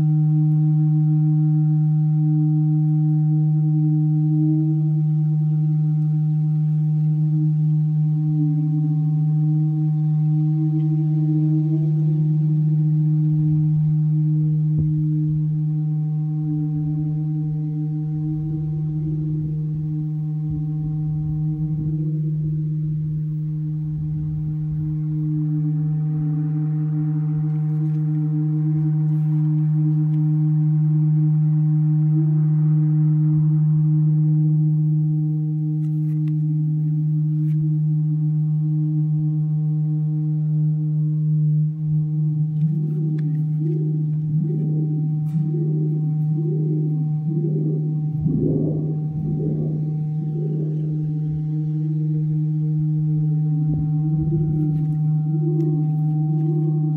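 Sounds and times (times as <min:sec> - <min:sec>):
acoustic feedback drone: 0:00.0 - 0:56.9
ringing feedback tones: 0:00.0 - 0:56.9
wavering pulsing tone: 0:00.0 - 0:56.9.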